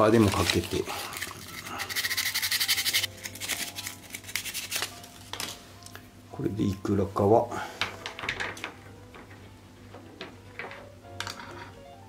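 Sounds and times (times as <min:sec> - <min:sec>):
faint background music: 0:00.0 - 0:12.0
sandpaper rubbing on plastic: 0:00.2 - 0:04.9.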